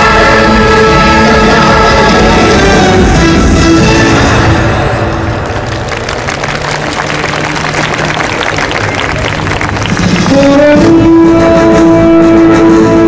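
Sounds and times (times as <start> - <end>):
show music: 0.0 - 13.0
audience applauding: 5.0 - 11.0.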